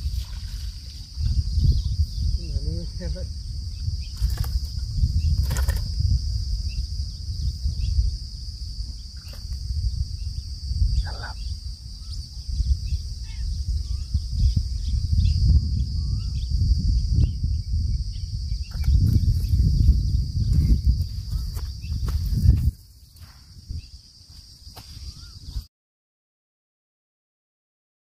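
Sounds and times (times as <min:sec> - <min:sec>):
insects droning: 0:00.0 - 0:25.7
wind rumbling on microphone: 0:00.0 - 0:25.7
bird chirps: 0:24.9 - 0:25.7.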